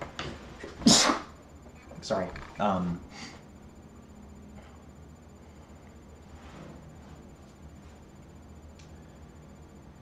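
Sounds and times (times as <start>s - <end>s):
person sneezing: 0.8s - 1.4s.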